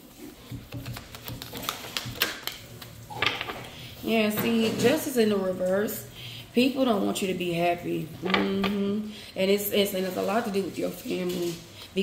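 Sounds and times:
cards being shuffled: 0:00.7 - 0:03.4.

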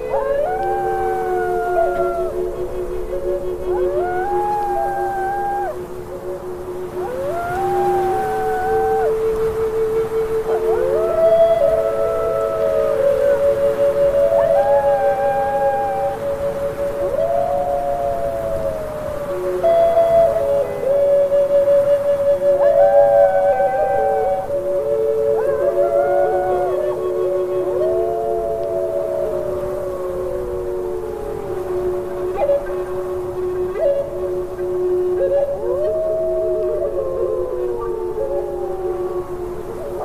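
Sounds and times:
slow music with long held notes: 0:00.0 - 0:40.0
wolves howling: 0:00.0 - 0:40.0.

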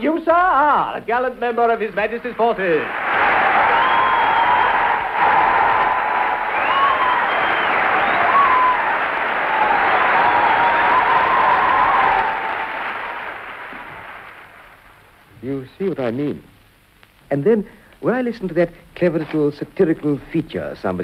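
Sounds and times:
audience applauding: 0:02.8 - 0:15.0.

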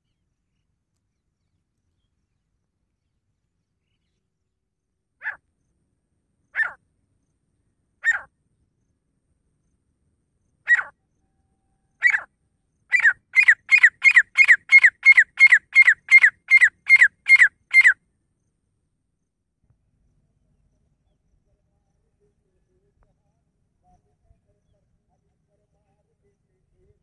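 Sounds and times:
francolin calling: 0:06.6 - 0:06.8, 0:08.0 - 0:08.3, 0:10.7 - 0:10.9, 0:12.0 - 0:12.3, 0:12.9 - 0:18.0.

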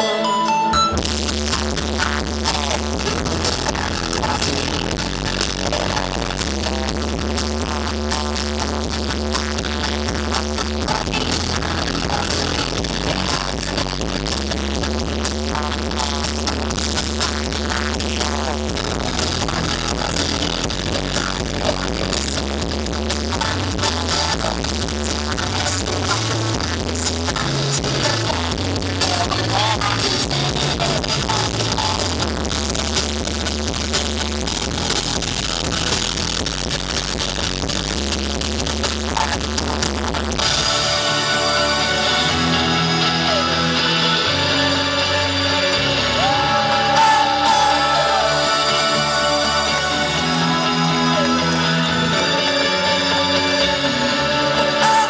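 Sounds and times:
live synth-pop band: 0:00.0 - 0:55.0
sustained bass line: 0:00.0 - 0:55.0.

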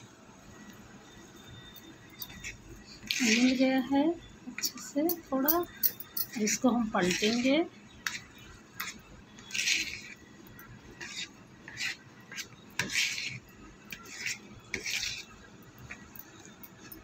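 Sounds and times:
spoon stirring batter in bowl: 0:02.1 - 0:17.0.

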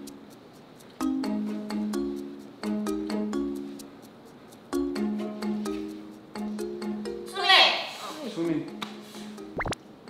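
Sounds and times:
light background music: 0:00.0 - 0:10.0
cartoon pop sound effect: 0:09.6 - 0:09.8.

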